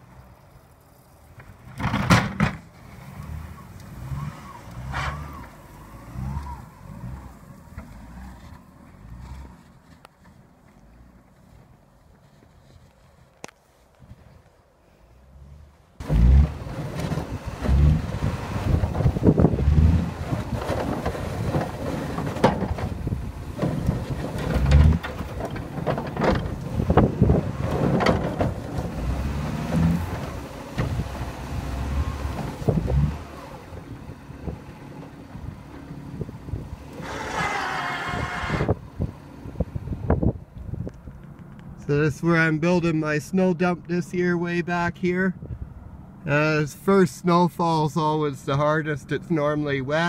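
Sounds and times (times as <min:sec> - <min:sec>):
car engine working hard: 0:01.7 - 0:09.9, 0:15.5 - 0:41.8
knocks and thumps: 0:01.8 - 0:02.6, 0:20.2 - 0:31.0.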